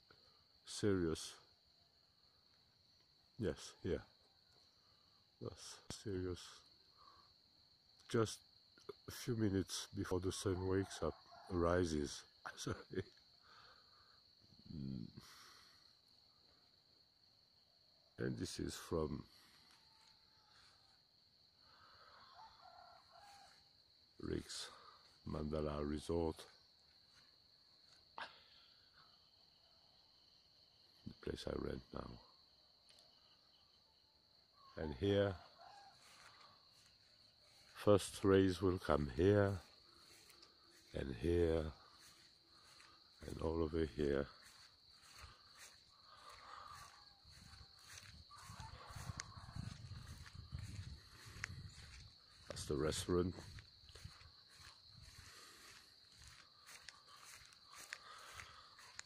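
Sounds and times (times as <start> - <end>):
high-pitched insect drone: 34.6 - 59.0.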